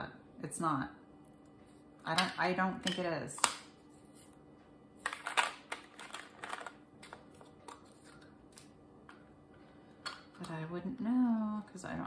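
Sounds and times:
plastic bags rustling: 5.2s - 8.3s.

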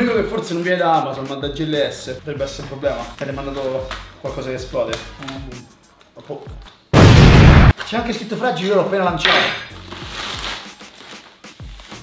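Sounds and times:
quiet background music: 0.0s - 12.0s
plastic mailer bag rustling: 9.7s - 12.0s.

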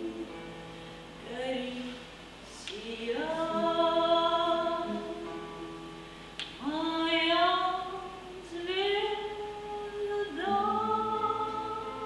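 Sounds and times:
woman singing: 0.0s - 0.5s, 1.2s - 5.6s, 6.6s - 12.0s
classical guitar: 0.0s - 12.0s.

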